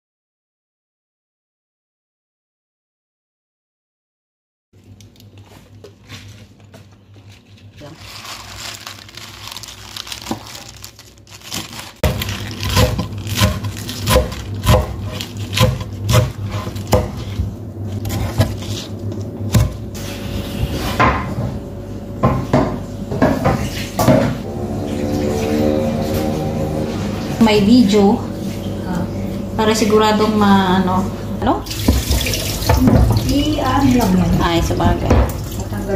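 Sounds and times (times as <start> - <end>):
knife chopping on wooden board: 12.0 - 18.6.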